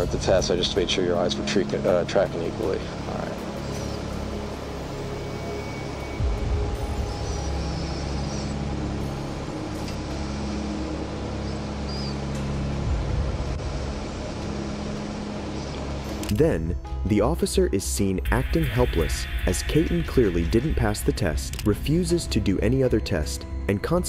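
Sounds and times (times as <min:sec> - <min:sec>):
faint background music: 0:00.0 - 0:24.0.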